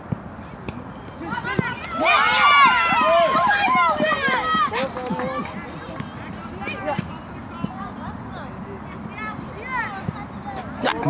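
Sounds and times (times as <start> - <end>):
children shouting excitedly: 1.7 - 5.6.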